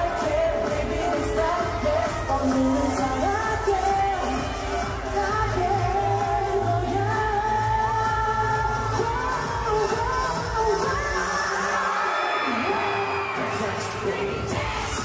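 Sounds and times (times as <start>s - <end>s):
pop backing track with bass beat: 0.0s - 11.8s.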